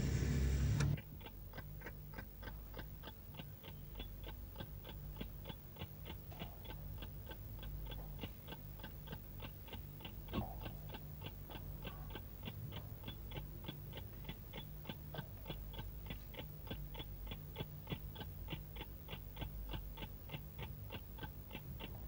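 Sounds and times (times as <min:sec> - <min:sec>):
low hum: 0:00.0 - 0:01.0
clock ticking: 0:01.2 - 0:22.0.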